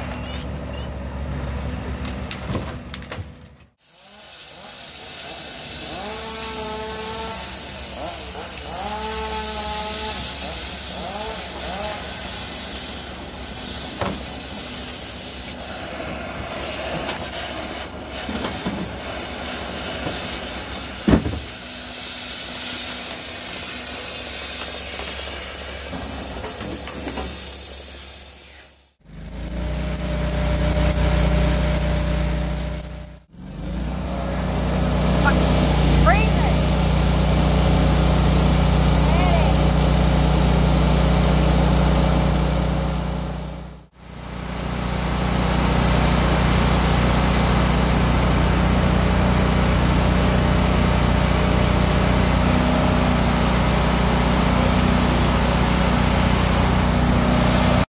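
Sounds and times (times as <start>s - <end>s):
engine idling: 29.0s - 52.3s.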